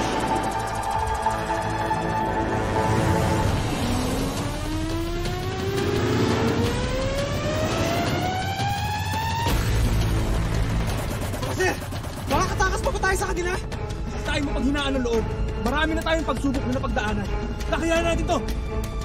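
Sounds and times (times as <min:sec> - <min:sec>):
dramatic score rising tone: 0:00.0 - 0:19.0.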